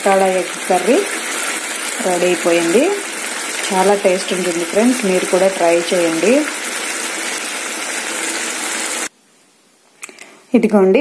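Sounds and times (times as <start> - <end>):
curry sizzling in a pan: 0.0 - 9.1.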